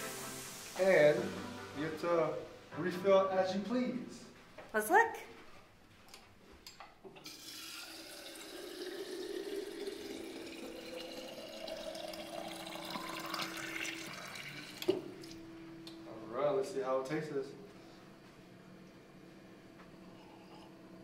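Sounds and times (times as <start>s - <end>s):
water filling a metal bottle: 7.2s - 14.9s.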